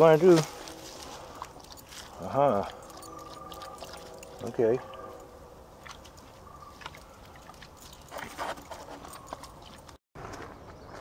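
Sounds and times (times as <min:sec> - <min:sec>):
dog splashing in creek: 0:01.3 - 0:08.7.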